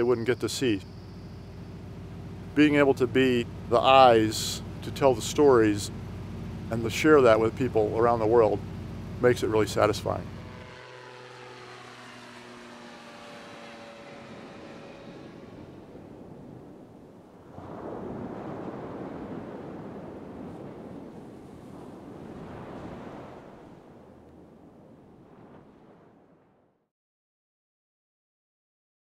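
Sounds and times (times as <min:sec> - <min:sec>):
light aircraft propeller drone: 0:00.0 - 0:25.5
surf rushing: 0:13.5 - 0:26.4.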